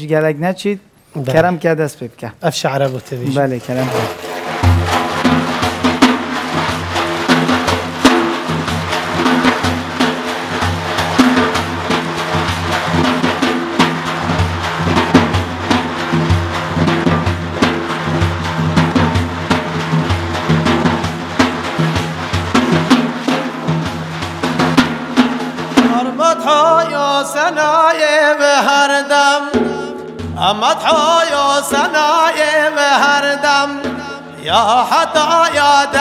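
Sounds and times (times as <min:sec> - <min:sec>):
frame drum struck by hand: 0:03.7 - 0:36.0.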